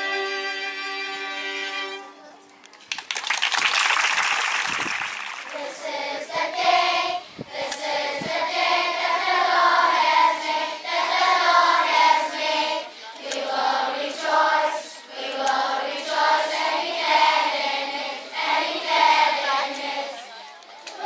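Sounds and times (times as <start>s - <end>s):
applause: 2.8s - 5.6s
children's choir singing: 5.4s - 21.0s.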